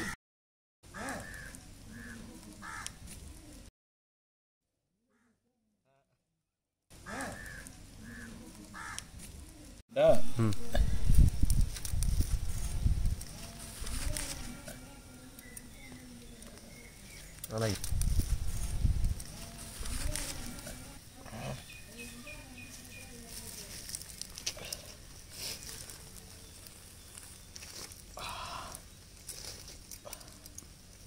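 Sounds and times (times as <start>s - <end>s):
bird calling: 1.0s - 3.0s, 7.0s - 9.6s
distant animal call: 7.0s - 9.1s.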